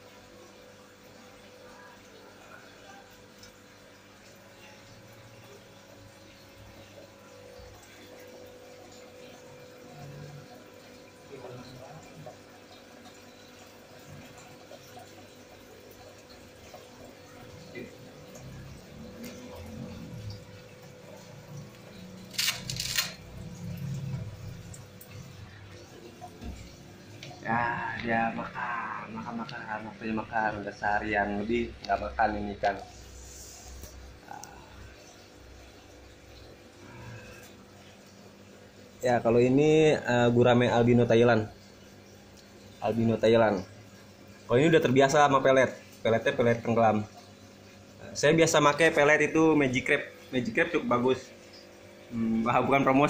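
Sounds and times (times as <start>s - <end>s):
faint pump hum: 0.0s - 53.0s
water sound: 0.0s - 53.0s.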